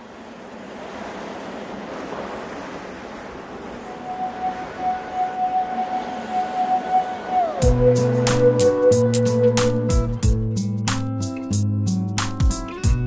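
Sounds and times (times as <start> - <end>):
wash of noise: 0.0 - 9.9.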